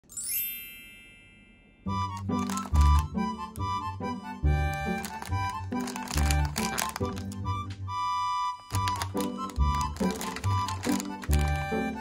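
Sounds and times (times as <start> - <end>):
bright chime ding: 0.1 - 1.8.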